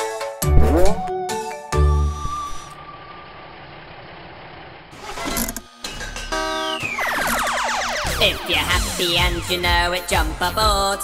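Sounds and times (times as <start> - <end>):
falling sweep: 0.4 - 1.2
song music: 0.4 - 1.6.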